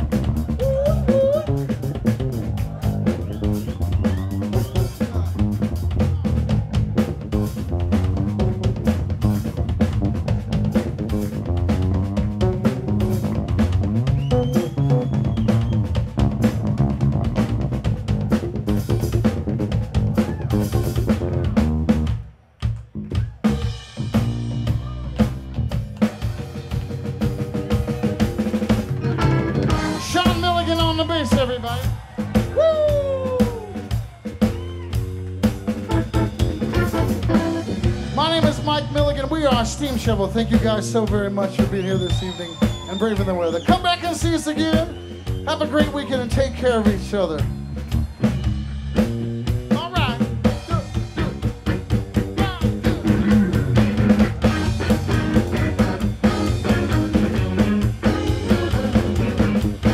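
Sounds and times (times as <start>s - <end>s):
electric bass guitar solo: 0.0s - 22.1s, 27.5s - 31.6s, 34.6s - 39.4s, 47.5s - 59.9s
drum kit playing: 0.0s - 59.9s.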